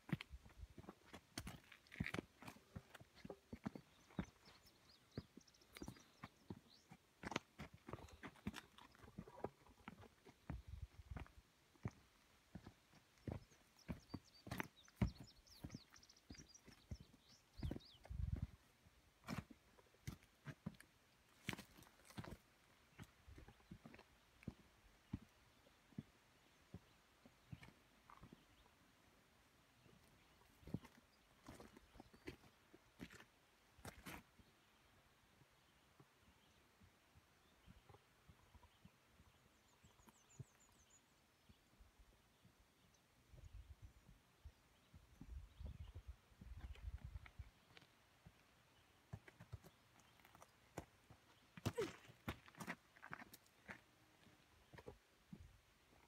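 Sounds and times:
footsteps on rocky dirt trail: 0.0s - 28.7s, 29.8s - 34.6s, 45.1s - 55.6s.

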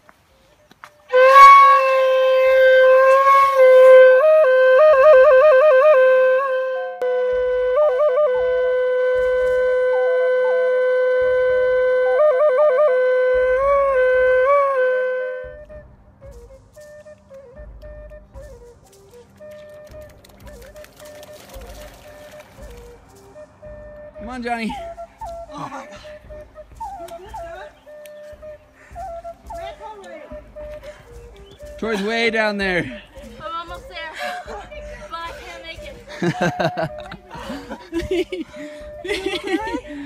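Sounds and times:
flute-like melody with trills: 0.5s - 40.0s.

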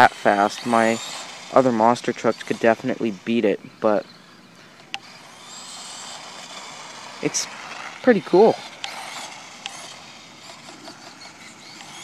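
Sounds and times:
electric motor and tyres whirring: 0.0s - 12.0s
faint high whine: 0.0s - 12.0s.

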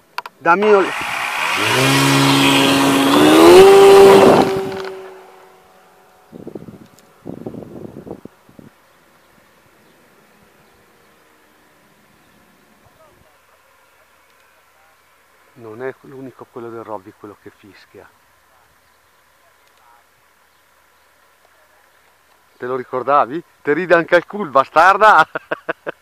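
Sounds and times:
brief noisy bursts: 0.6s - 5.5s
electric motor and propeller whine: 0.6s - 8.2s.

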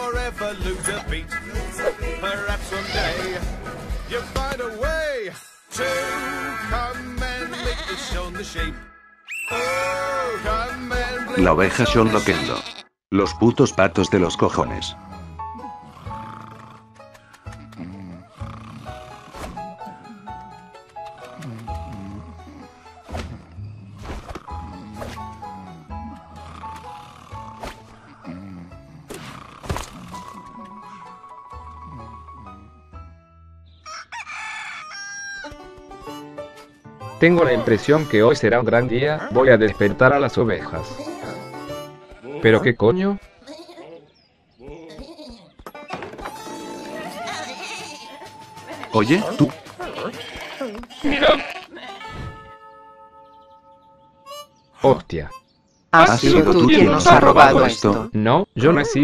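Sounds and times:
cartoon sheep bleating: 2.7s - 3.4s, 5.8s - 8.5s, 9.5s - 12.9s, 49.9s - 52.5s
sheep snoring: 15.0s - 20.6s, 21.2s - 30.5s, 31.7s - 32.9s
soft music with held notes: 30.1s - 33.8s, 35.5s - 42.7s, 52.0s - 54.7s.

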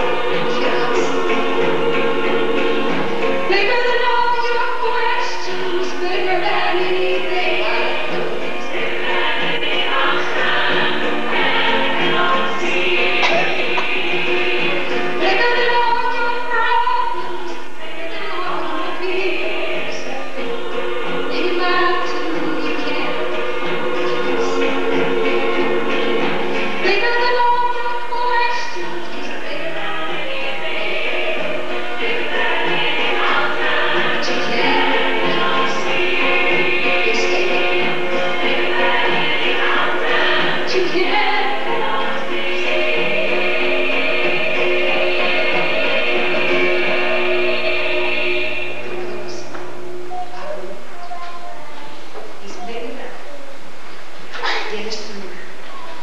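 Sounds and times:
gospel singing with accompaniment: 0.0s - 52.8s
backing music: 0.0s - 56.0s.

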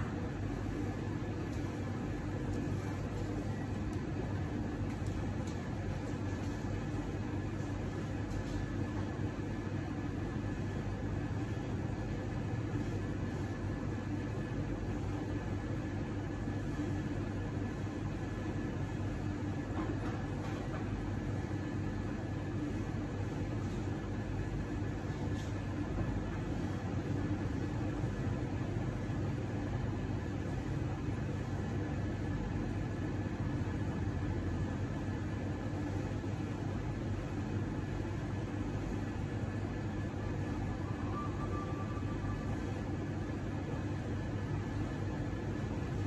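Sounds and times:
low machinery rumble and hum: 0.0s - 46.0s
faint high-pitched whine: 40.1s - 45.0s.

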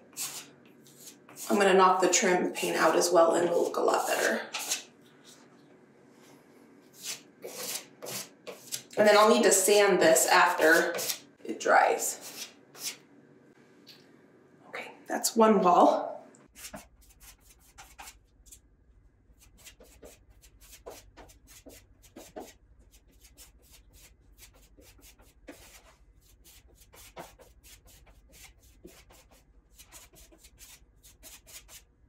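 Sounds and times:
putty knife scraping: 7.0s - 8.9s, 10.6s - 11.2s, 12.2s - 13.0s.

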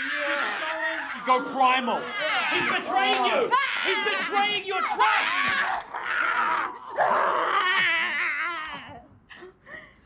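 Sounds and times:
people yelling and grunting: 0.0s - 9.1s.

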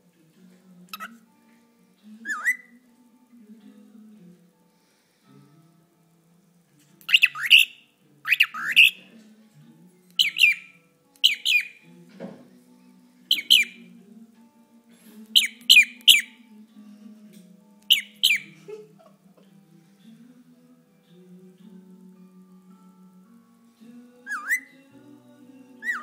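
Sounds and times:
cockatiel chirping: 7.1s - 9.0s, 10.2s - 11.8s, 13.3s - 13.8s, 15.4s - 16.4s, 17.9s - 18.5s, 24.3s - 24.7s.

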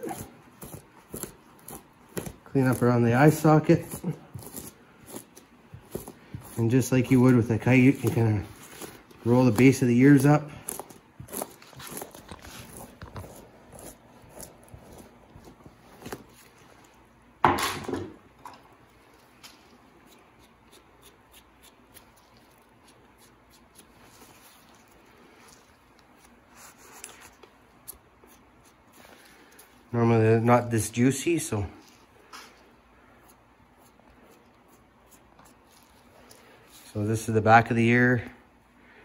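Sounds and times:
knife scraping hide: 0.0s - 16.9s.

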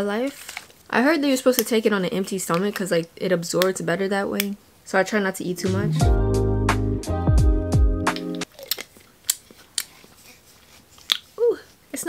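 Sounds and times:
guitar music: 5.6s - 8.5s.

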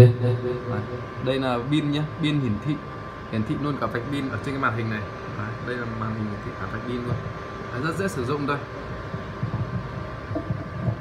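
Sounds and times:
faint murmurs: 0.0s - 11.0s
faint steady hum: 0.0s - 11.0s
low uneven room rumble: 0.0s - 11.0s.

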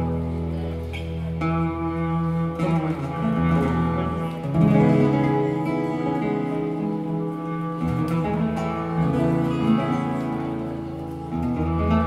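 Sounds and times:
acoustic guitars: 0.0s - 12.0s.

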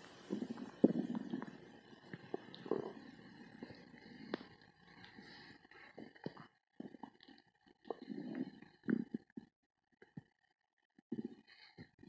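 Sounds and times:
stomach gurgling: 0.0s - 12.0s.

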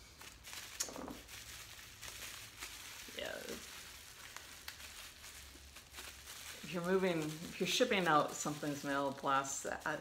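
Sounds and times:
packaging rustling: 0.0s - 10.0s.

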